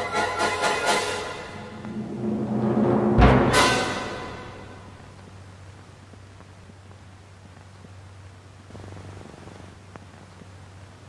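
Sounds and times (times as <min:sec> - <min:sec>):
low electrical hum: 0:00.0 - 0:11.0
rough pulsing buzz: 0:01.5 - 0:05.4.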